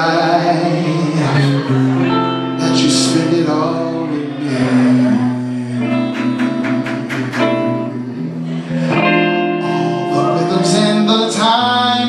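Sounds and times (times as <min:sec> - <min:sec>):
electric guitar: 0:00.0 - 0:12.0
person singing: 0:00.0 - 0:12.0
sharp drum hits: 0:05.9 - 0:07.9.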